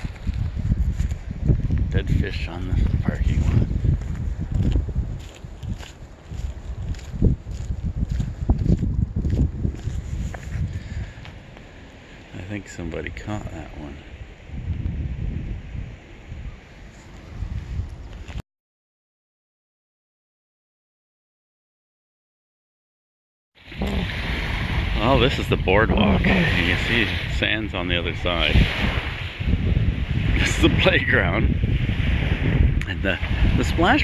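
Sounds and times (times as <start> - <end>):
footsteps on gravel: 0.0 - 1.8, 2.8 - 10.7
wind buffeting microphone: 0.0 - 18.4, 23.6 - 34.0
small waves on lakeshore: 23.6 - 34.0.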